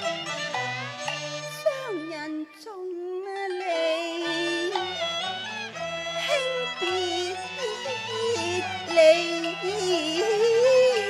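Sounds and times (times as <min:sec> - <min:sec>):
instrumental accompaniment: 0:00.0 - 0:11.0
woman singing opera into microphone: 0:01.6 - 0:04.8, 0:06.2 - 0:11.0.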